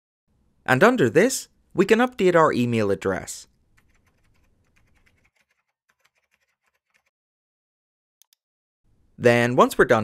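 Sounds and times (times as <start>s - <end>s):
typing on computer keyboard: 3.8s - 7.1s.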